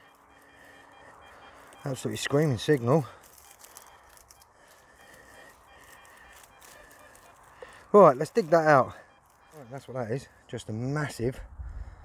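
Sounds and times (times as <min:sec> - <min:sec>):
dry stubble crackling against coil: 0:00.0 - 0:11.2
metal detector high-pitched tone: 0:00.0 - 0:11.2.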